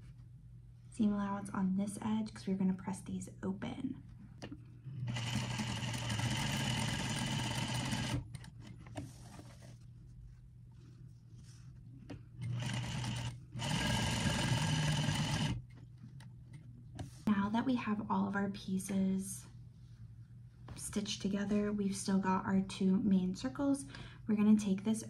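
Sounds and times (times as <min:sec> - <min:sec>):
sewing machine stitching: 0:05.0 - 0:08.9, 0:12.4 - 0:15.6.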